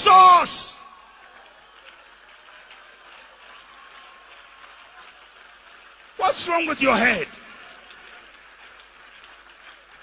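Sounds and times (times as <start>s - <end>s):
large hall room tone hiss: 0.0s - 10.0s.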